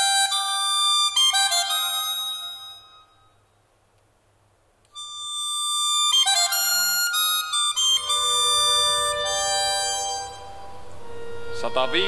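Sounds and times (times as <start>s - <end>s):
accordion playing held chords: 0.0s - 3.0s, 5.0s - 12.0s.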